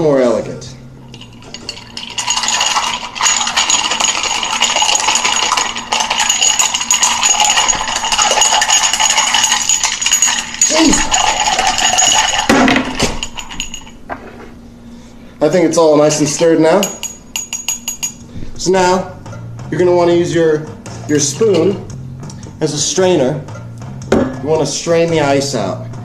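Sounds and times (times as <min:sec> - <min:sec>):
ice cubes clinking in glass: 0:01.1 - 0:13.9
glass ringing: 0:01.1 - 0:14.0, 0:16.7 - 0:18.3, 0:21.2 - 0:21.9, 0:23.5 - 0:24.6.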